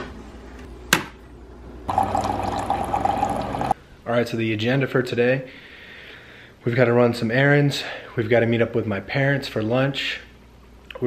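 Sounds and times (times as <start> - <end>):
coffee hissing into cup: 1.9 - 3.8.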